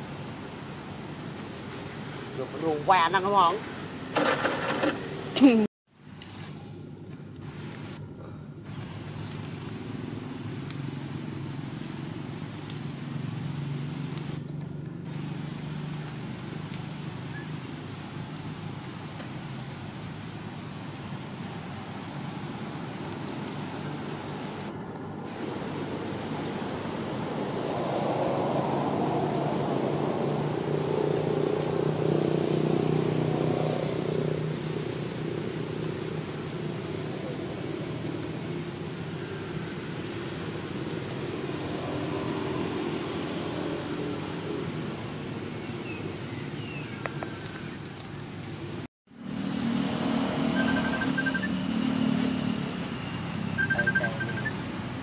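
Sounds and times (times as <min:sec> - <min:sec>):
vehicle engine humming: 0:49.1 - 0:55.0.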